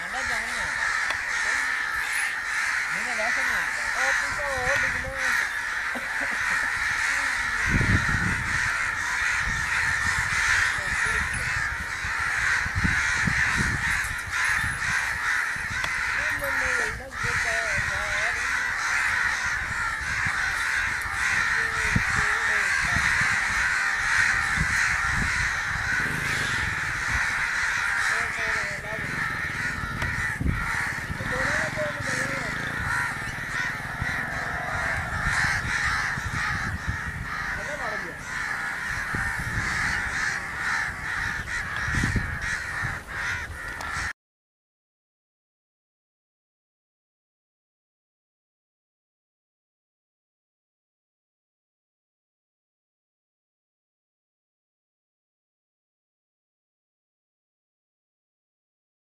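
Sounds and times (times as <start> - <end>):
chorus of birds calling: 0.0 - 44.2.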